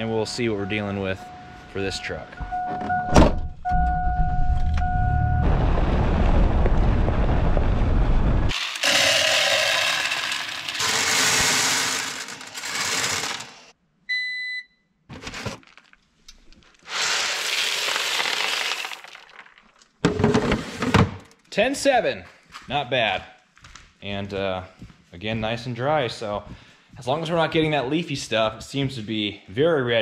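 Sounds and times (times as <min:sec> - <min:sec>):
short electronic beep: 0:02.4 - 0:05.5
low rumble: 0:03.5 - 0:08.5
soybeans pouring and rattling: 0:08.5 - 0:13.7, 0:15.4 - 0:16.0, 0:16.8 - 0:19.9.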